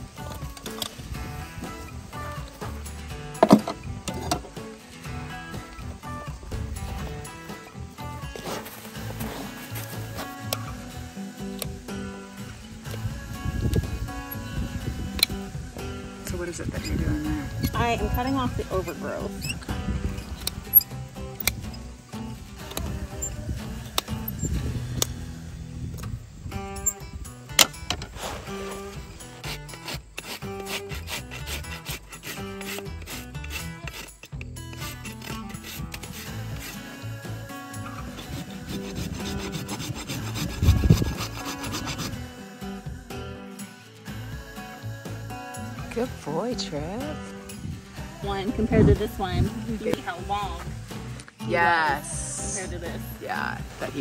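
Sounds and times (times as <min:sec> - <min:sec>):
hoof rasp scraping: 0:00.0 - 0:25.4, 0:26.6 - 0:42.8.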